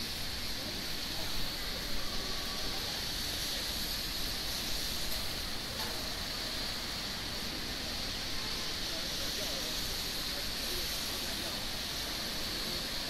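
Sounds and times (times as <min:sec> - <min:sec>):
city background noise: 0:00.0 - 0:13.0.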